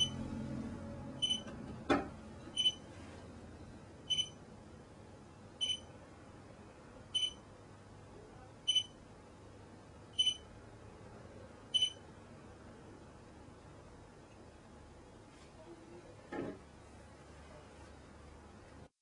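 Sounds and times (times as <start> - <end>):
short high electronic beeps: 0.0 - 0.2, 2.6 - 2.8, 4.1 - 4.4, 5.6 - 5.9, 7.2 - 7.4, 8.7 - 9.0, 10.2 - 10.4, 11.8 - 12.0.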